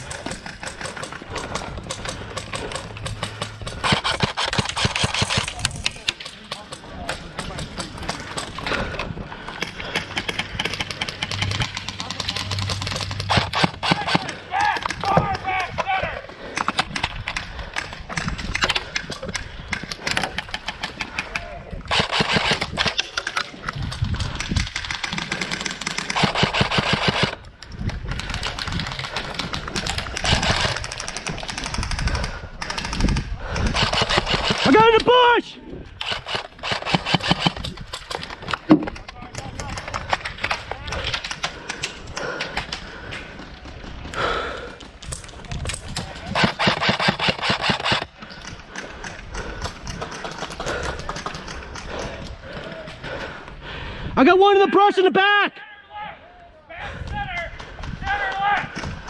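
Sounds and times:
airsoft guns firing full-auto: 0.1 - 8.6, 9.6 - 14.4, 21.9 - 23.4, 24.6 - 27.4, 28.2 - 32.0, 32.6 - 35.1, 36.0 - 38.3, 45.9 - 48.2.

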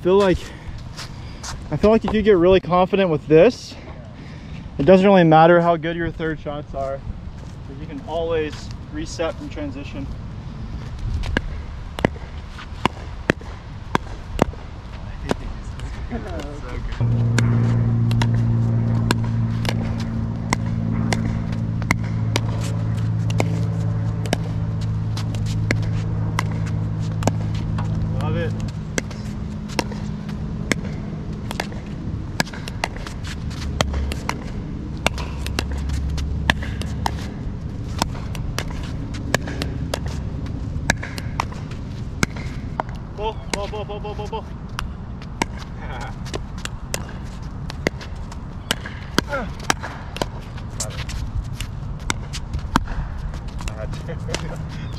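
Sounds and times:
low steady hum: 0.0 - 54.9.

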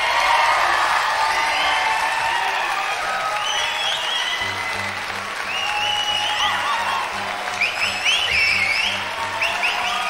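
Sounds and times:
audience applauding and cheering: 0.0 - 10.0.

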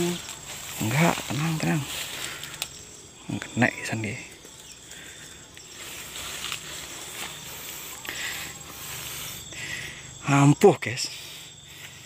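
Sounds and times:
rustling in leafy undergrowth: 0.0 - 10.2
high-pitched insect drone: 0.0 - 12.0.

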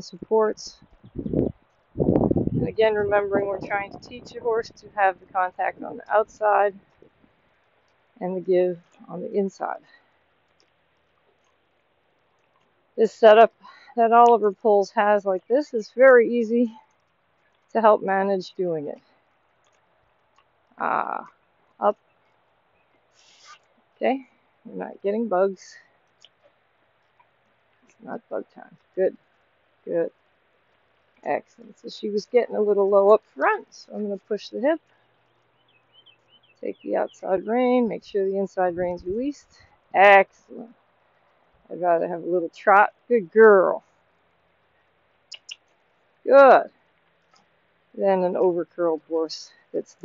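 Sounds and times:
faint hiss: 19.0 - 24.7
squeaky lip kissing sounds: 45.3 - 45.6.

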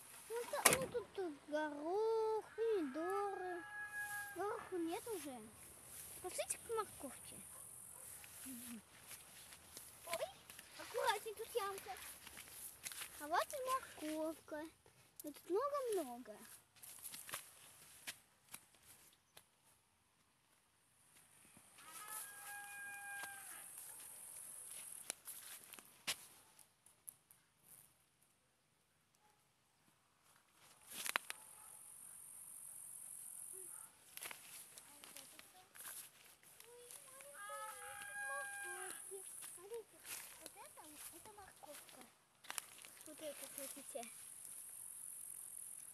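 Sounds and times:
faint rustling of plants: 0.0 - 28.3, 29.8 - 31.8, 33.4 - 45.9
rooster crowing: 2.4 - 4.8, 21.8 - 23.8, 37.4 - 39.0.

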